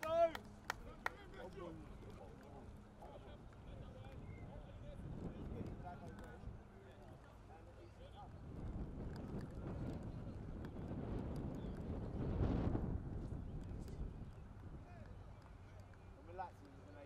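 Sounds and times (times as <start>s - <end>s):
faint shouts of footballers: 0.0s - 1.5s
wind rumbling on microphone: 0.0s - 16.9s.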